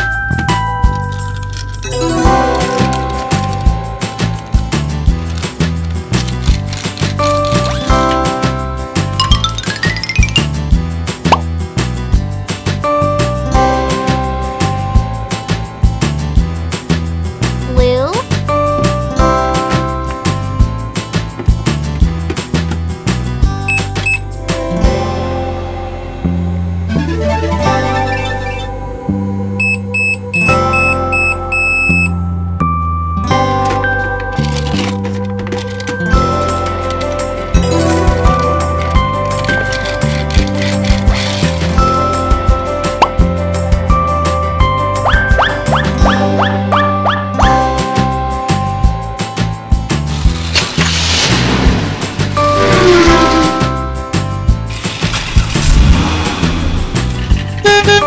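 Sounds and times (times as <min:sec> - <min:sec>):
background music: 0:00.0 - 0:58.0
held beep tone: 0:23.7 - 0:24.2, 0:29.6 - 0:32.2
short high electronic beeps: 0:23.7 - 0:24.2
car engine sound effect: 0:26.8 - 0:29.1, 0:50.4 - 0:58.0
background music with low beat: 0:42.0 - 0:50.0.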